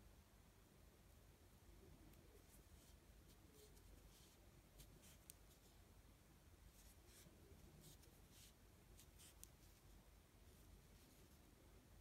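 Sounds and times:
crochet hook scratchy rustles: 0:02.1 - 0:05.8, 0:06.6 - 0:11.5.

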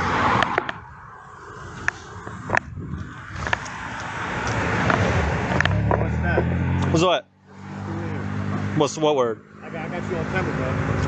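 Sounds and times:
low vehicle engine hum: 0:00.0 - 0:11.0
road traffic noise: 0:00.0 - 0:11.0.

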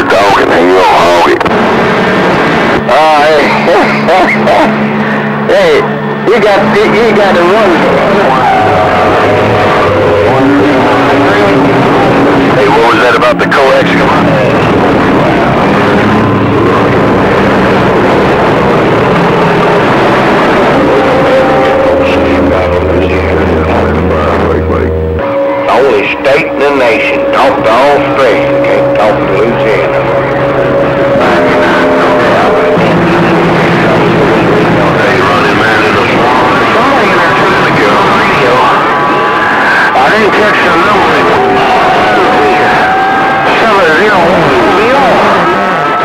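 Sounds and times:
garbled radio voice: 0:00.0 - 0:01.5, 0:02.8 - 0:04.8, 0:10.2 - 0:14.8, 0:21.4 - 0:25.0, 0:25.7 - 0:30.0, 0:31.2 - 0:38.9
radio static: 0:00.0 - 0:42.8, 0:43.5 - 0:46.0.

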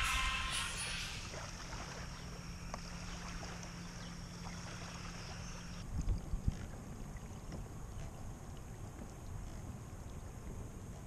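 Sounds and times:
wind rumbling on microphone: 0:00.0 - 0:02.4, 0:05.8 - 0:11.0
high buzz: 0:00.0 - 0:03.6
steady low hum: 0:00.0 - 0:11.0.

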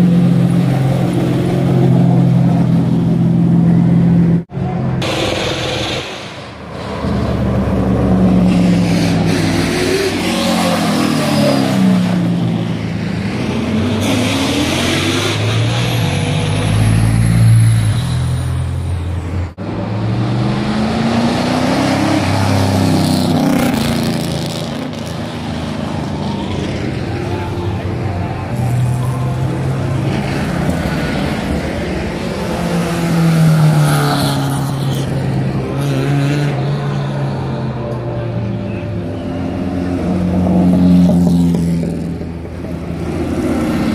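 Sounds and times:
other car engines: 0:00.0 - 0:43.9.

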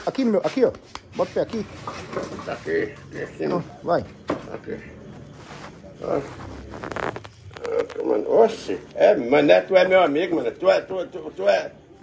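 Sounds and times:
rustling: 0:05.0 - 0:08.7.

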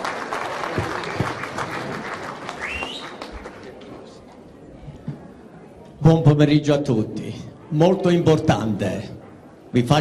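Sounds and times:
audience applauding: 0:00.0 - 0:03.9.

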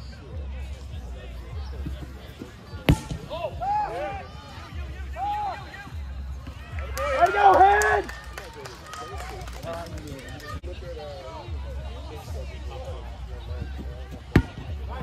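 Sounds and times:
kickball smack: 0:02.8 - 0:03.3, 0:14.3 - 0:14.6
players shouting: 0:02.9 - 0:08.5.

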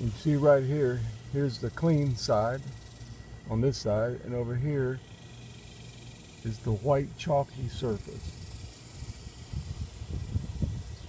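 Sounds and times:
pulsing insect trill: 0:00.0 - 0:11.0
low rumble on microphone: 0:06.4 - 0:11.0.

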